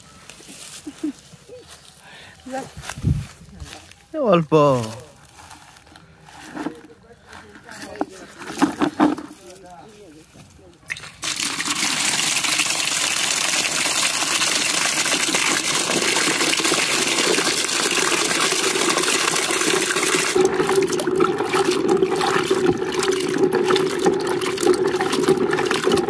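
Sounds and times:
water pouring into a bucket: 0:10.9 - 0:26.0
water splashing: 0:10.9 - 0:26.0.

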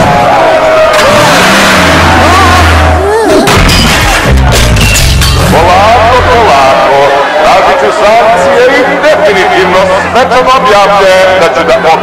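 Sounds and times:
cartoon van engine revving: 0:00.8 - 0:04.5.

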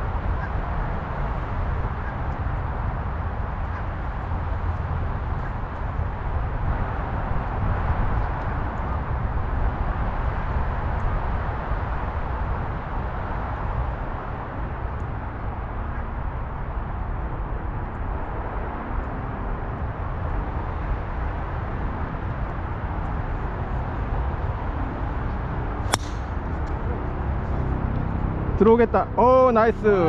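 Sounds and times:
golf club striking ball: 0:25.9 - 0:26.8.

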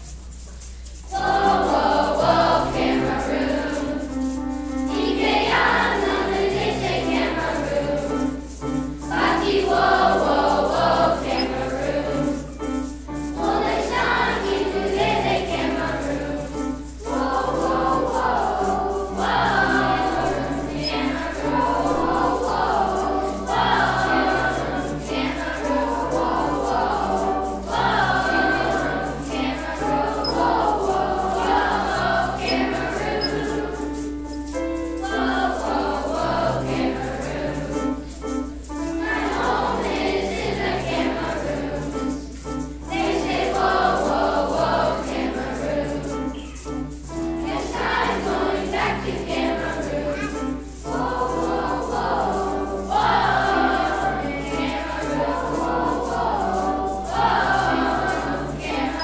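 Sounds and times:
piano accompaniment: 0:00.0 - 0:59.0
children's choir singing: 0:01.0 - 0:59.0.

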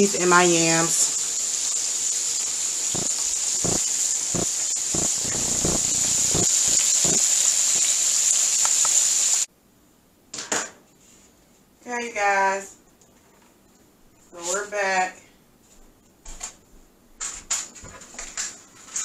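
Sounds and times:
meat sizzling in hot oil: 0:00.0 - 0:09.5.

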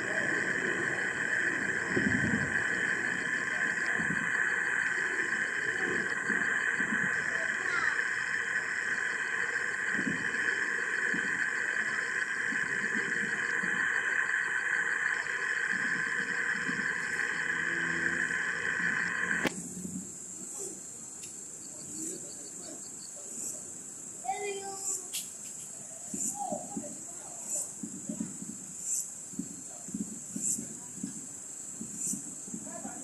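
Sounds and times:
high-pitched buzzing drone: 0:00.0 - 0:20.0.

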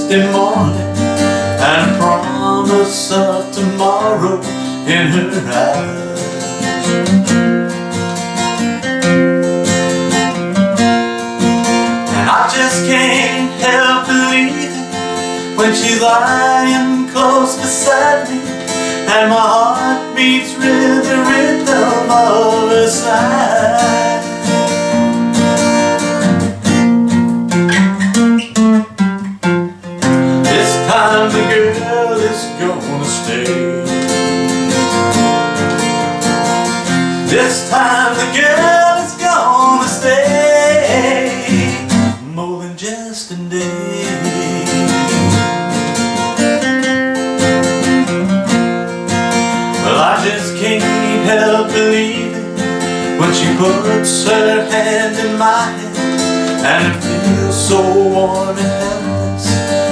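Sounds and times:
man singing: 0:00.0 - 0:07.0, 0:12.0 - 0:24.6, 0:30.3 - 0:34.9, 0:37.2 - 0:46.0, 0:49.7 - 0:59.9
acoustic guitar strumming: 0:00.0 - 0:59.9.

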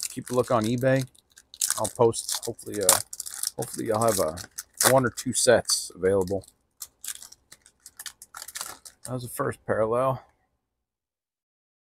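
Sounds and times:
foil wrapper crinkling: 0:00.0 - 0:09.3.

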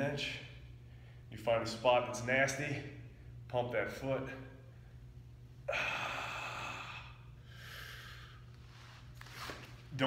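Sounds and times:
man exhaling hard: 0:05.7 - 0:08.4.

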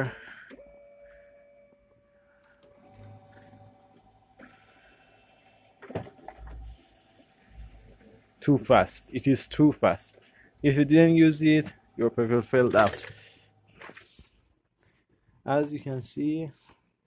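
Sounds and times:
printer motor whine: 0:01.7 - 0:07.5
printer click: 0:12.7 - 0:13.2.

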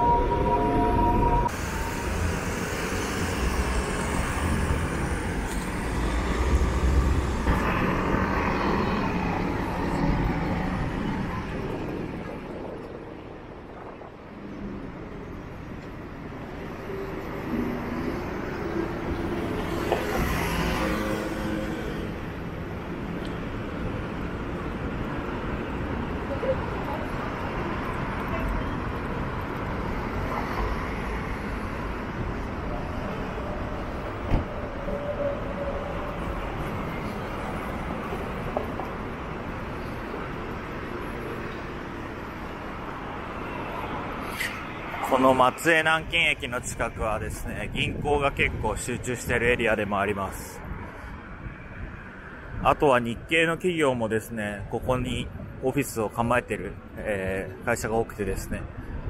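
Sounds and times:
cars and scooters passing: 0:00.0 - 0:12.7, 0:16.0 - 0:47.2.

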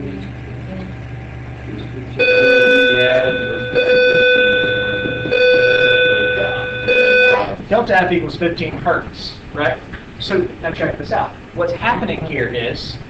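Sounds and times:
buzzy electronic tone: 0:00.0 - 0:08.3
faint murmuring: 0:00.0 - 0:13.0
low hum: 0:00.0 - 0:13.0.

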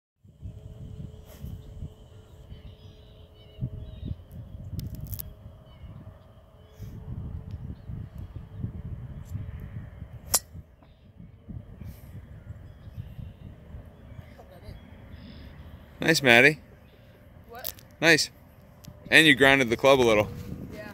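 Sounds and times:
low steady rumble: 0:00.3 - 0:20.9
golf club striking ball: 0:10.3 - 0:10.6.

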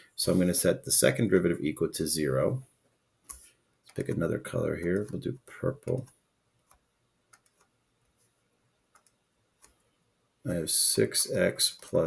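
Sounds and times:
faint computer mouse clicks: 0:08.9 - 0:09.8.

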